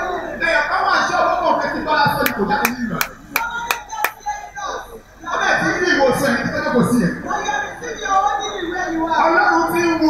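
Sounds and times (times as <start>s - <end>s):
hands clapping: 2.2s - 4.2s.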